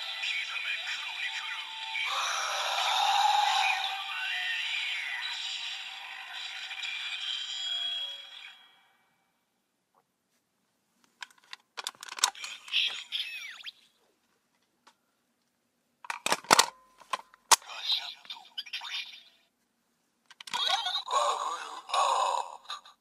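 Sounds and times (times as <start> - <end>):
recorded toy voice calls: 0.0 - 8.7, 12.4 - 14.0, 17.6 - 19.4, 20.5 - 23.0
electronic toy sound effects: 0.0 - 8.9, 12.3 - 13.9, 17.7 - 19.4, 20.5 - 22.5.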